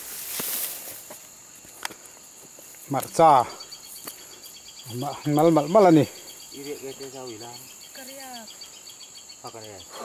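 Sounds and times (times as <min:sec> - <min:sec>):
insects shrilling: 0:00.0 - 0:10.0
faint pulsing chirp: 0:02.9 - 0:10.0.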